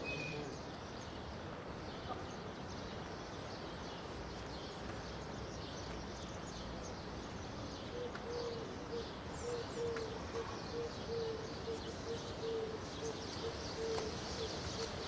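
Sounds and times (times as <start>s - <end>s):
background hiss: 0.0s - 15.0s
small birds chirping: 0.0s - 15.0s
low hooting bird call: 7.9s - 15.0s.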